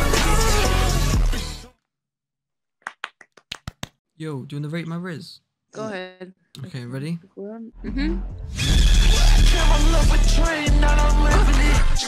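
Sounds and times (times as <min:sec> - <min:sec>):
hand clapping: 0:02.8 - 0:04.0.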